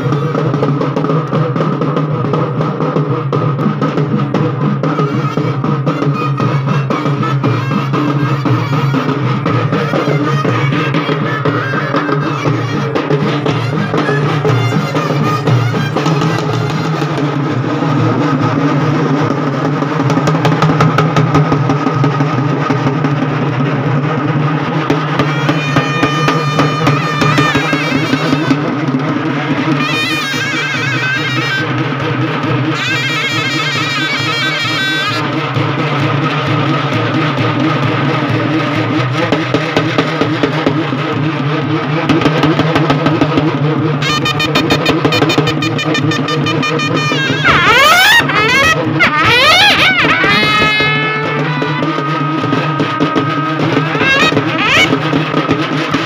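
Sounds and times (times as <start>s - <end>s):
quick drum strokes: 0.0s - 56.0s.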